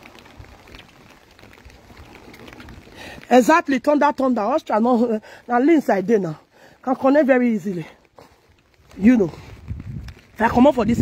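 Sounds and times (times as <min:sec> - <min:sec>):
faint footsteps: 0:00.0 - 0:03.4, 0:07.6 - 0:10.8.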